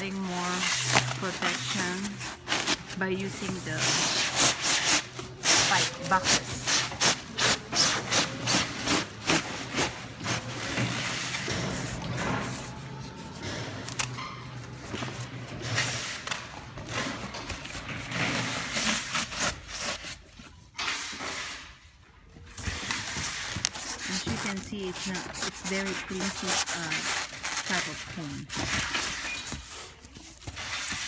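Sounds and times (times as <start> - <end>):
foam and cardboard scraping: 0.0 - 14.0, 14.9 - 21.7, 22.6 - 31.0.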